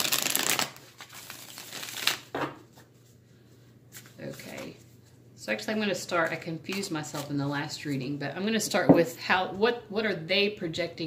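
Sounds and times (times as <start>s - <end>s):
cards rustling: 0.0s - 2.3s.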